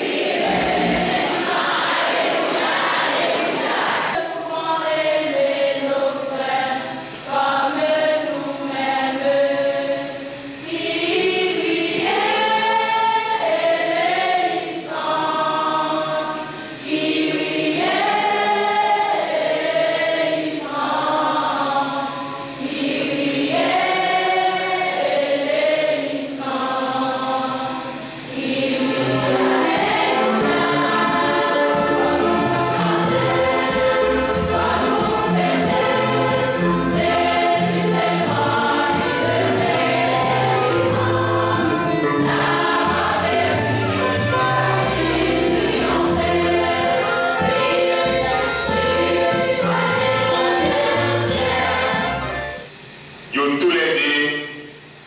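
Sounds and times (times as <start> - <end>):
choir singing a hymn: 0.0 - 55.0.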